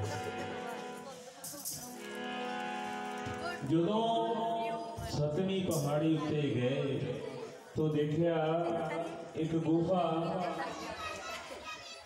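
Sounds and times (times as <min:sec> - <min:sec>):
crowd chatter: 0:00.0 - 0:12.0
man narrating: 0:03.6 - 0:07.0
children's voices: 0:08.5 - 0:12.0.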